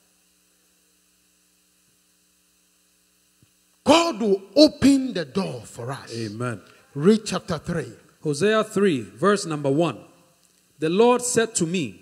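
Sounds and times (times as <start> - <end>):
faint electrical mains hum: 0.0 - 12.0
man's voice: 3.9 - 10.0, 10.8 - 12.0.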